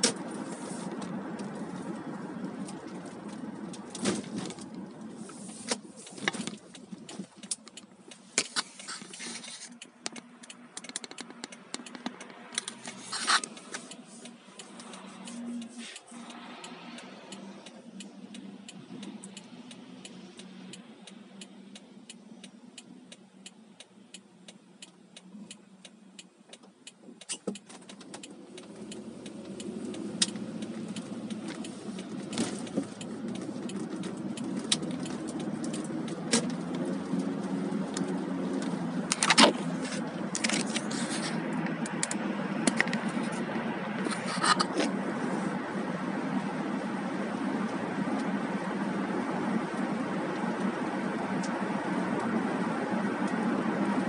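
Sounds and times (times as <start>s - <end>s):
car engine and road noise: 0.0s - 54.0s
car engine idling: 0.0s - 54.0s.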